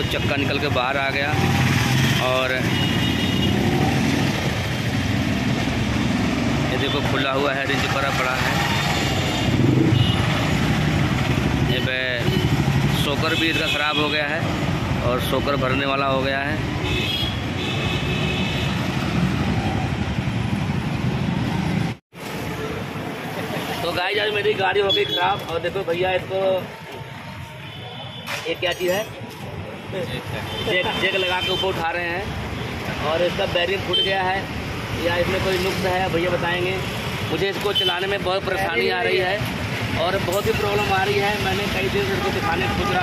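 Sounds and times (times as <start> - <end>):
street noise: 0.0 - 43.0.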